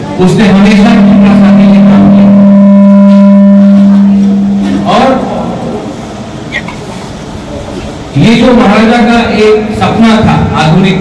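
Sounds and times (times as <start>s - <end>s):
microphone feedback howl: 0.5s - 6.0s.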